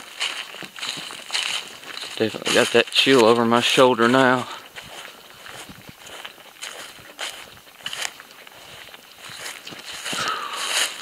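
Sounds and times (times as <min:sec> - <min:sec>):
soft footsteps on ground: 0:00.0 - 0:11.0.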